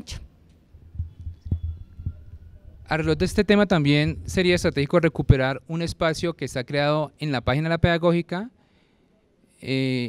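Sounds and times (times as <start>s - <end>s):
microphone handling rumble: 0.8s - 5.4s.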